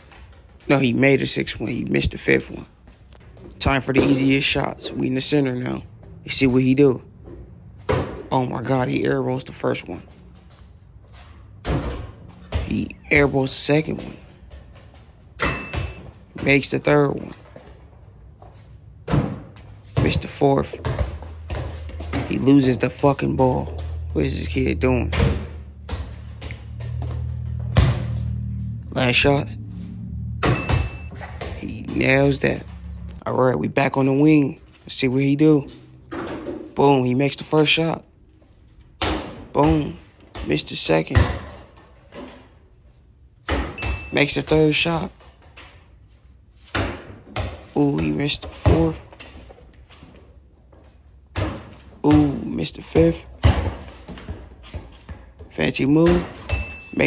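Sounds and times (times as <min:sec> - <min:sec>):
rubber balls thudding on concrete: 0:07.2 - 0:08.4, 0:18.4 - 0:28.5, 0:51.3 - 0:56.8.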